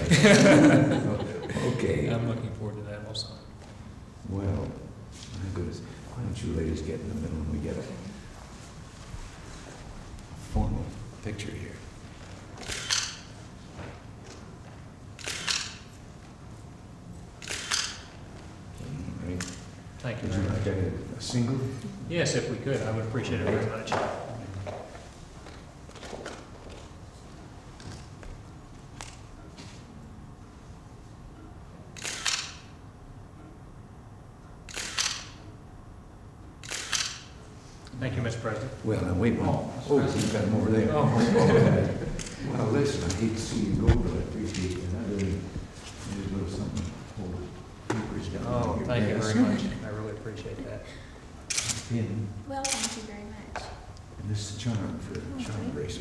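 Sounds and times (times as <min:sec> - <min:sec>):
camera shutter firing: 0:12.6 - 0:13.3, 0:15.2 - 0:15.9, 0:17.4 - 0:18.1, 0:32.0 - 0:32.8, 0:34.7 - 0:35.4, 0:36.6 - 0:37.4, 0:51.5 - 0:51.9, 0:52.6 - 0:53.1.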